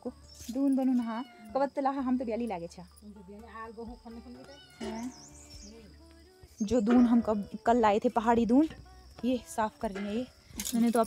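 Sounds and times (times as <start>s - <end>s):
cat meowing: 4.5s - 5.2s.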